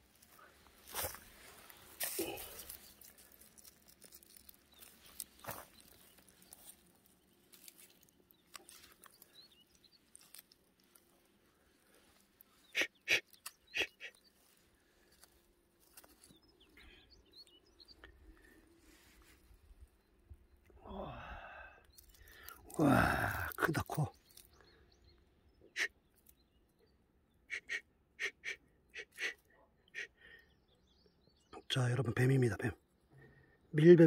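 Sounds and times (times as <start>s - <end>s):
crunching taps on dry grass: 0.2s - 11.1s, 13.2s - 13.8s, 14.4s - 16.5s
faint bird chirps: 4.2s - 34.0s.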